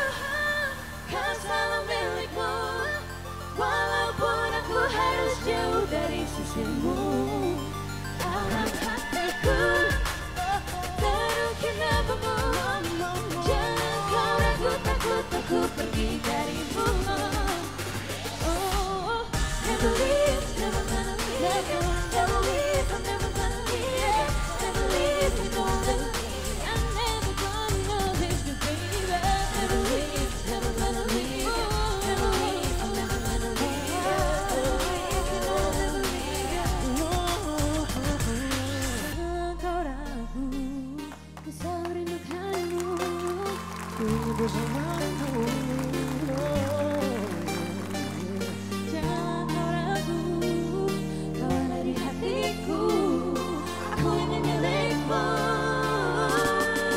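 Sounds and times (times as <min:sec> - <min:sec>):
person singing over backing track: 0:00.0 - 0:56.9
low beat with ticking cymbals: 0:08.2 - 0:42.7.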